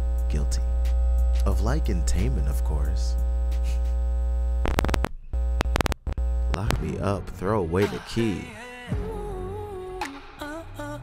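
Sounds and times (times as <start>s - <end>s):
deep bass hum: 0.0s - 7.8s, 9.0s - 10.0s
sharp glitchy clicks: 4.6s - 7.0s.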